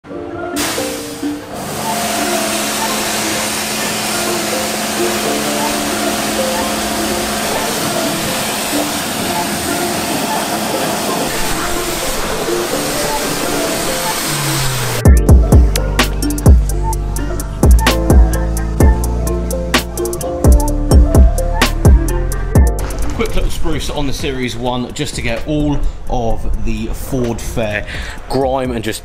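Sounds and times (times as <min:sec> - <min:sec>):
pressure washer spraying water: 0:00.6 - 0:20.2
music with heavy bass beat: 0:11.8 - 0:23.0.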